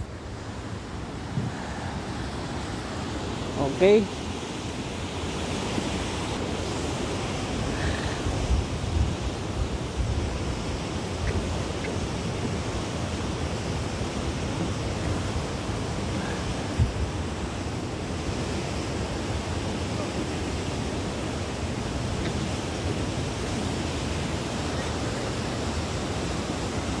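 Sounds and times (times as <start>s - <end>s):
wind buffeting microphone: 5.1s - 18.4s.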